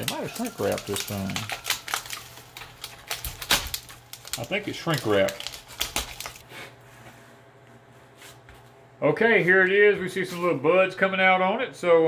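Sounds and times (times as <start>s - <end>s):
knife cutting plastic shrink-wrap: 0.0s - 6.4s.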